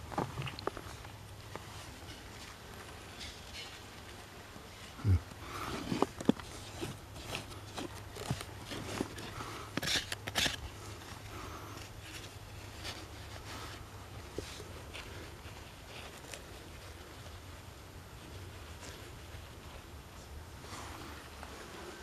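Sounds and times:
metal tool scraping dirt and rock: 0:01.8 - 0:04.2, 0:05.6 - 0:11.2.

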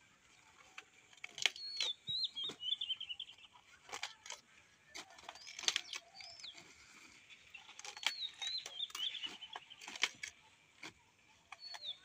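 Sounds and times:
songbird singing and trilling: 0:00.2 - 0:12.0
crisp snaps of leaves handled: 0:00.7 - 0:02.6, 0:03.4 - 0:06.7, 0:07.7 - 0:12.0.

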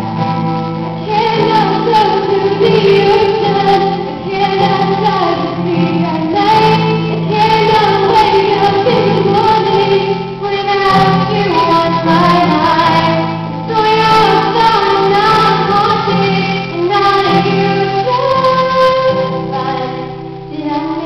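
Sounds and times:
acoustic guitar: 0:00.0 - 0:21.0
young woman singing slowly: 0:01.0 - 0:21.0.

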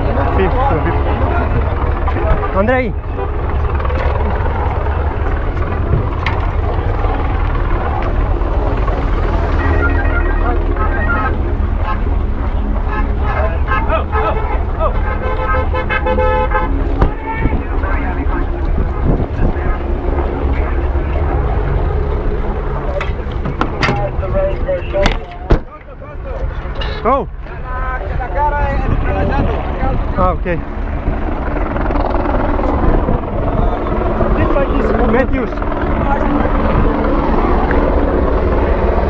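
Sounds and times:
helicopter rumble: 0:00.0 - 0:39.0
people's voices: 0:00.0 - 0:39.0
car horns tooting: 0:12.8 - 0:17.3.

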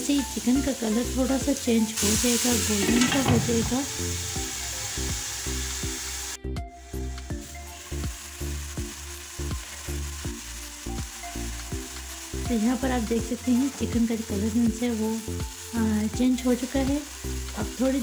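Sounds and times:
background music with bass line: 0:00.0 - 0:18.0
chicken and onion sizzling in oil: 0:00.0 - 0:18.0.

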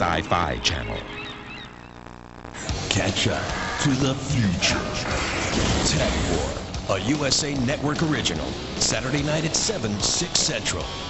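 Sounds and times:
sudden loud burst of sound: 0:04.6 - 0:06.6.

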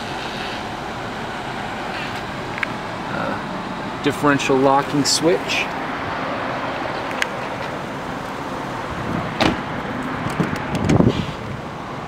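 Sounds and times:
low vehicle and outdoor noise: 0:00.0 - 0:12.0
car door thump: 0:09.3 - 0:09.7
car door latch click: 0:09.4 - 0:09.6.

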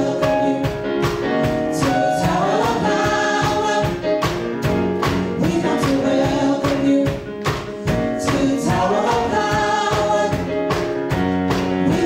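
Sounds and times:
choir singing in harmony: 0:00.0 - 0:12.0
drums beat: 0:00.0 - 0:12.0
keyboards: 0:00.0 - 0:12.0.

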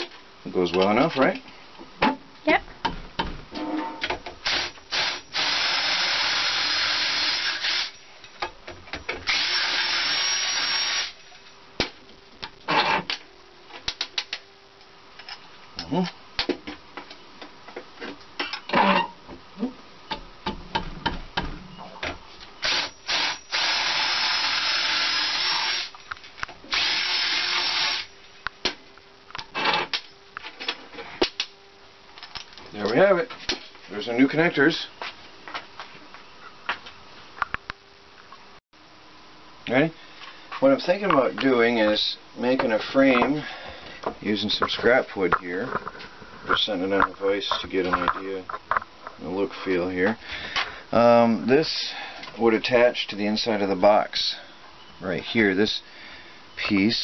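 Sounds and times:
power drill drilling metal: 0:04.4 - 0:08.0, 0:09.2 - 0:11.2, 0:22.6 - 0:26.0, 0:26.7 - 0:28.1.

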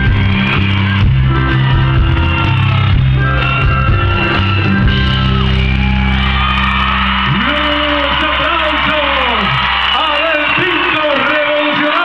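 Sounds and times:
audience cheering: 0:00.0 - 0:12.0
shouted whoops: 0:00.1 - 0:12.0.

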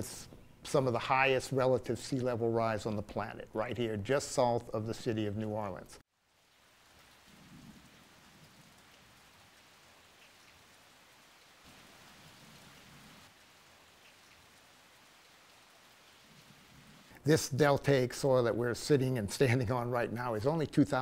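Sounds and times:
faint outdoor hiss: 0:00.0 - 0:21.0.

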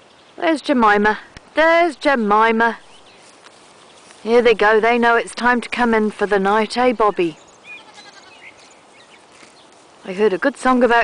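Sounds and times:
cattle tearing and chewing grass: 0:03.1 - 0:04.7, 0:08.4 - 0:11.0
faint bird chirps: 0:07.0 - 0:09.7.

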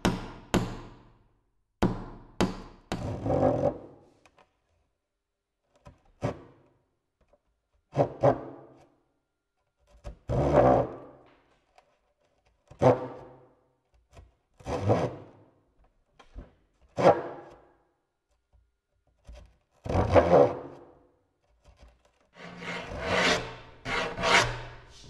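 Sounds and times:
rough scraping on wood: 0:21.7 - 0:25.0.

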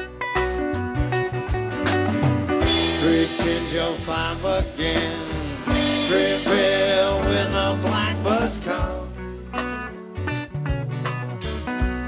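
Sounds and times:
band playing country blues: 0:00.0 - 0:12.0.

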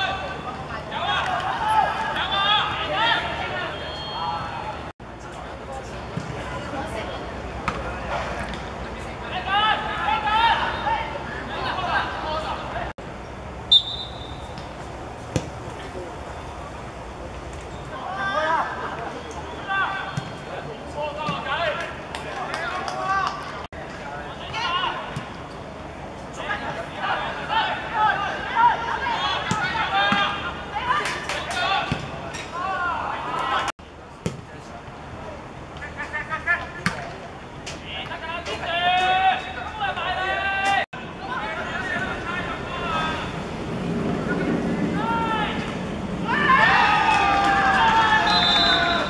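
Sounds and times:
players calling and shouting: 0:00.0 - 0:04.9, 0:05.6 - 0:49.0
players shouting: 0:00.0 - 0:04.9, 0:09.3 - 0:12.9, 0:26.4 - 0:33.7, 0:44.4 - 0:49.0
outdoor background noise: 0:00.0 - 0:49.0.

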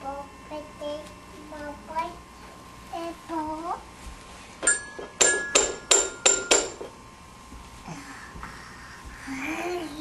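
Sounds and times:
sharp ringing strikes: 0:04.6 - 0:06.9.

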